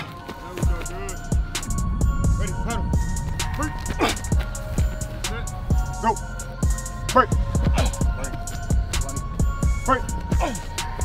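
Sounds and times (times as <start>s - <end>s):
deep bass kicks: 0.6s - 11.0s
hi-hats: 0.6s - 11.0s
rapped vocal: 0.6s - 11.0s.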